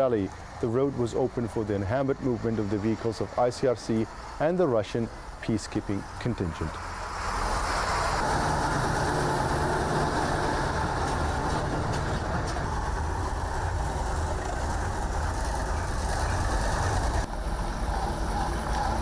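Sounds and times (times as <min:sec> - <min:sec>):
heavy trucks driving past: 0:00.0 - 0:19.0.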